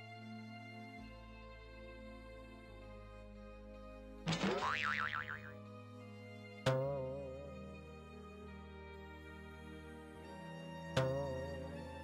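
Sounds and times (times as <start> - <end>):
soft background music: 0.0 - 12.0
springy cartoon boing: 4.3 - 5.6.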